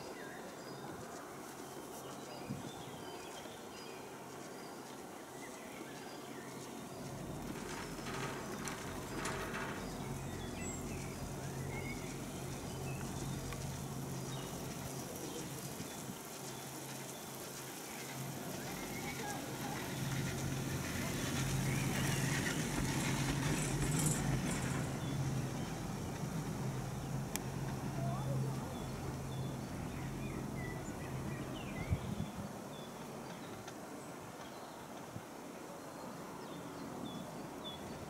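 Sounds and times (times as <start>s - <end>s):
distant voices: 6.5s - 32.0s.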